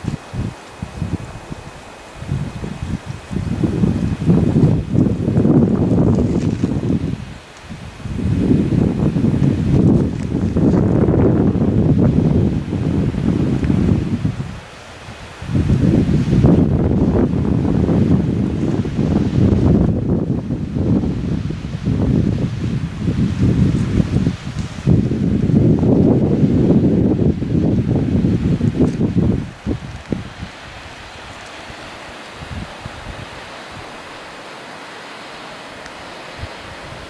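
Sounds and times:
wind buffeting the microphone: 0:00.0 - 0:34.4, 0:35.8 - 0:37.0.

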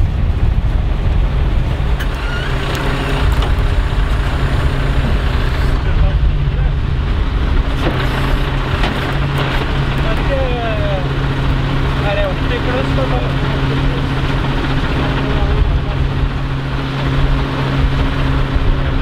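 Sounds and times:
diesel truck engine idling: 0:01.9 - 0:17.7.

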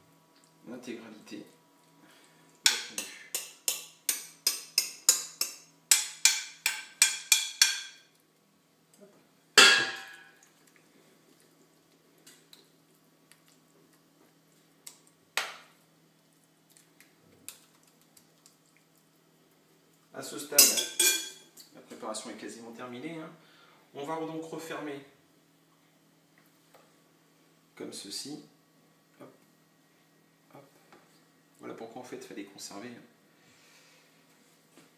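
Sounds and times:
metal utensil tapping glass bowl: 0:20.6 - 0:21.4.

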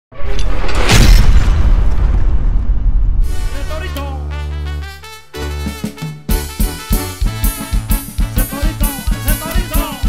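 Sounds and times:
cinematic boom: 0:00.1 - 0:04.0
deep rumble: 0:00.1 - 0:04.0
music: 0:03.2 - 0:10.0.

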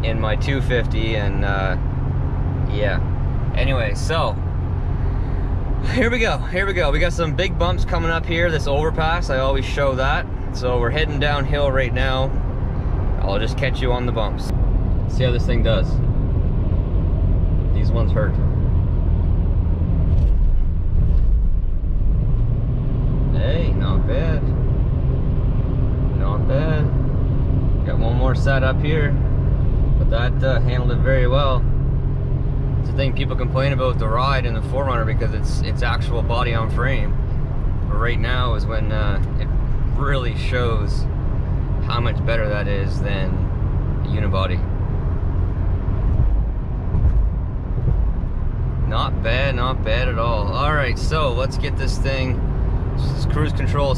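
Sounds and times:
road and drivetrain rumble: 0:00.0 - 0:53.9.

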